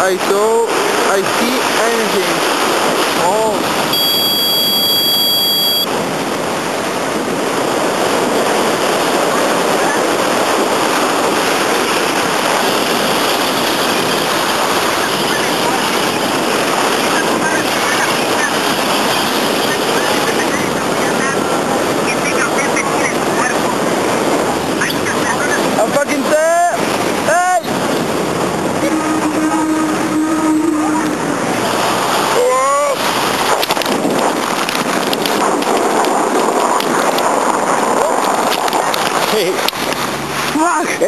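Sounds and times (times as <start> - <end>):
wind buffeting microphone: 0.0 - 41.0
steady high tone: 3.2 - 5.9, 28.8 - 31.3.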